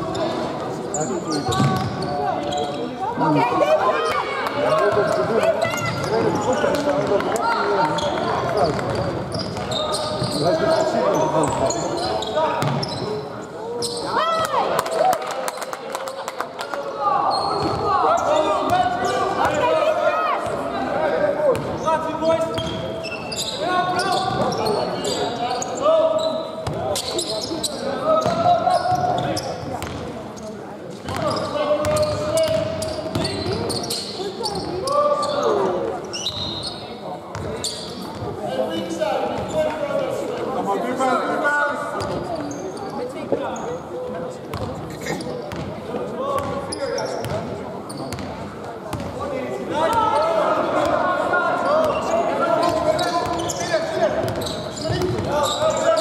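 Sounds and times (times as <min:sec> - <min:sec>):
ball bouncing on wooden court: 0:01.5 - 0:02.0, 0:12.6 - 0:12.9.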